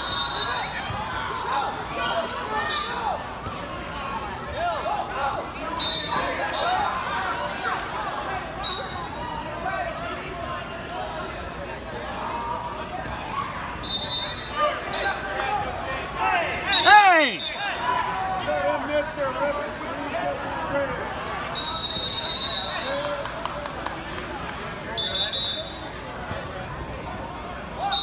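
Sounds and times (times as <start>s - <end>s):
hubbub of many voices: 0.0s - 28.0s.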